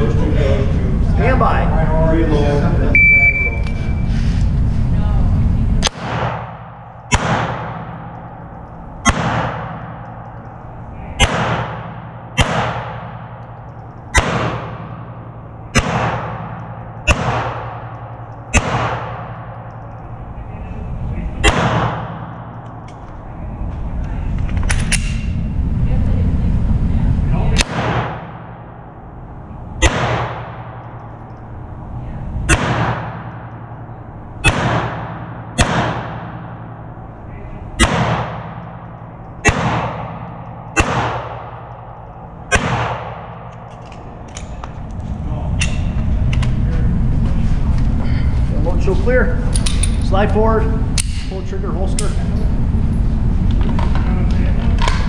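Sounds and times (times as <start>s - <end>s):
handgun shots reverberating indoors: 5.8s - 20.2s, 21.4s - 22.9s, 27.6s - 28.9s, 29.8s - 31.5s, 32.4s - 37.1s, 37.8s - 44.6s, 50.9s - 51.3s.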